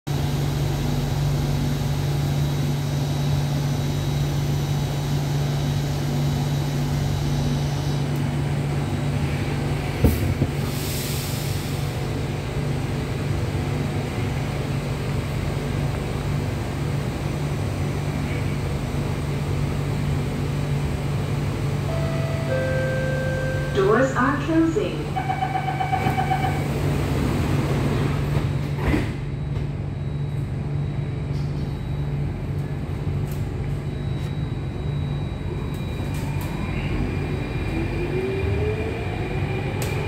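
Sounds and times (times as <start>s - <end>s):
low hum inside metro car: 0.1s - 40.0s.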